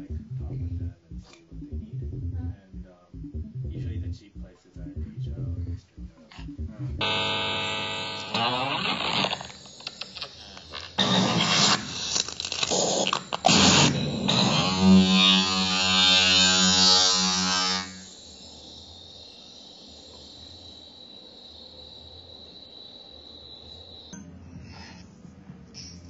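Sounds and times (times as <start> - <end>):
buzzy electronic tone: 0.0 - 21.4
faint hum with high whine: 0.0 - 26.0
harsh electronic noise bursts: 2.8 - 20.0.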